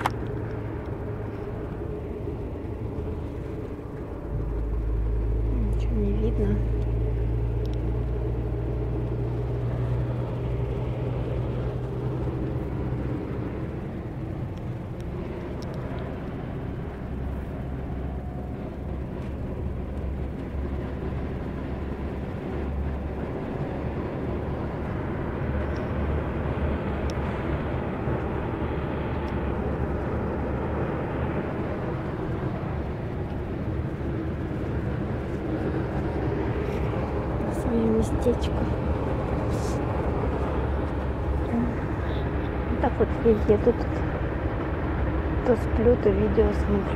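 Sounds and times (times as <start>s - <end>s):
bus engine rumble: 0.0s - 46.9s
road noise on slushy road: 0.0s - 46.9s.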